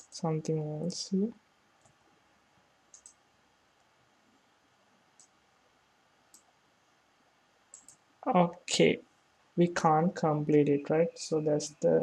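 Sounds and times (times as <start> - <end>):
computer mouse clicks: 2.9 - 3.2, 5.2 - 5.4, 6.3 - 6.5, 7.7 - 8.0.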